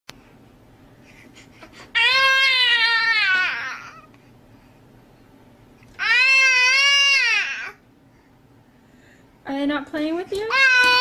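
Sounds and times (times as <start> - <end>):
baby crying: 1.8 - 4.1, 6.0 - 7.8.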